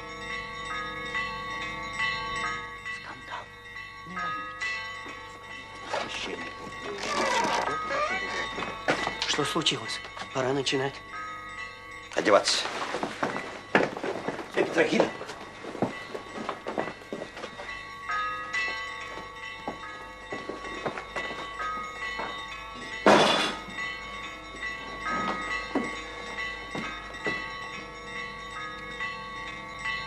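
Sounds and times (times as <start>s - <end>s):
church bells ringing: 0.0s - 30.0s.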